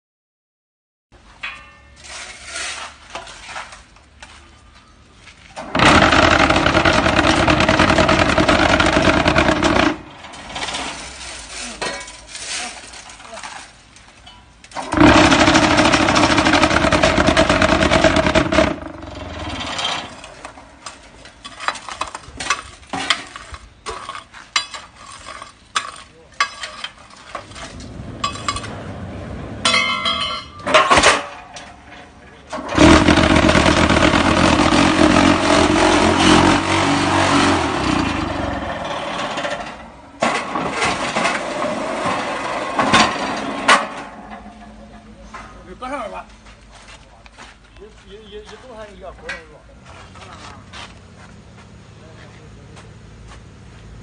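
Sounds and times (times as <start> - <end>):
metal clanks and knocks: 1.3 - 3.8, 14.2 - 28.8, 29.6 - 45.6
vibrating table running: 5.6 - 11.0, 14.8 - 20.4, 32.7 - 39.8.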